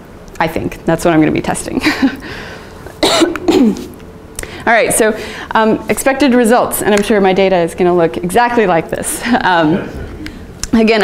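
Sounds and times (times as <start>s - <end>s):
woman laughing: 1.8s - 2.2s, 3.2s - 4.0s, 9.1s - 10.0s
woman coughing: 3.0s - 4.0s, 9.5s - 10.0s.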